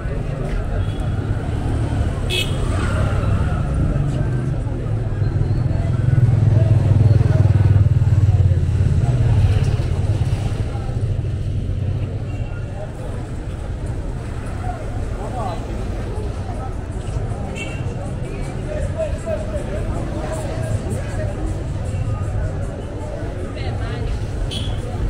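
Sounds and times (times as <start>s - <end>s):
chatter of passers-by: 0.0s - 25.0s
low traffic rumble: 0.0s - 25.0s.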